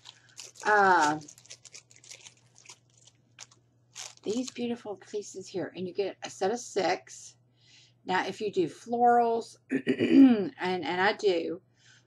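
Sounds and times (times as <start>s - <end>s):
plastic package crinkling: 0.0s - 4.7s.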